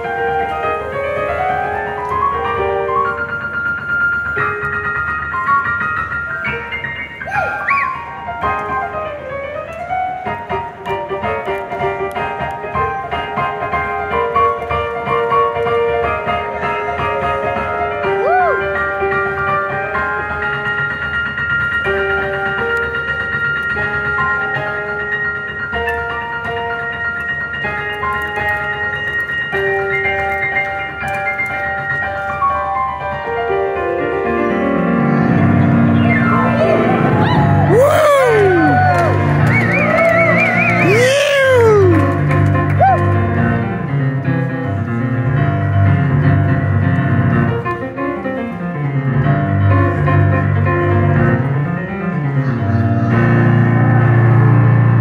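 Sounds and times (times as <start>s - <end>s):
digital piano chords: 0.0s - 55.0s.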